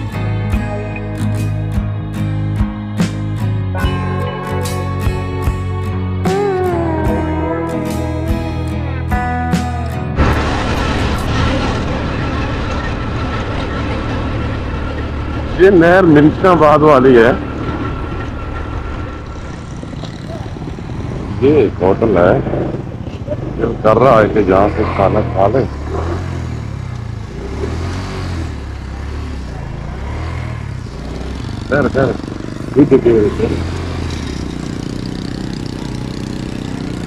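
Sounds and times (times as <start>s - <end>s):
motorcycle engine drone: 0.0s - 37.0s
road and wind noise: 0.0s - 37.0s.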